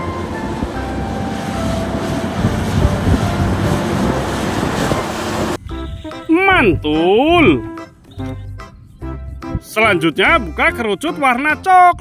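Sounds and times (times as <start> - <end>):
road noise: 0.0 - 10.4
truck engine rumble: 0.0 - 10.7.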